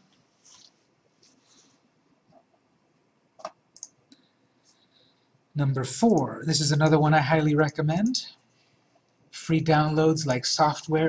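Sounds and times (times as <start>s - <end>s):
computer mouse clicks: 3.4s - 4.8s.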